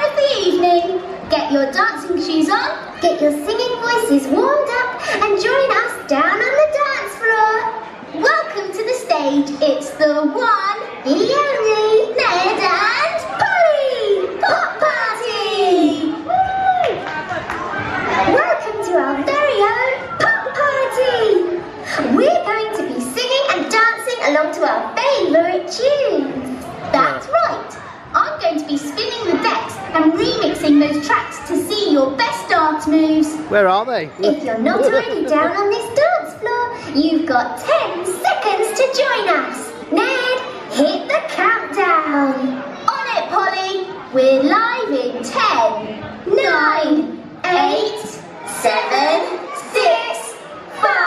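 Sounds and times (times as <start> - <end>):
children chattering: 0.0 - 16.3, 16.9 - 51.0.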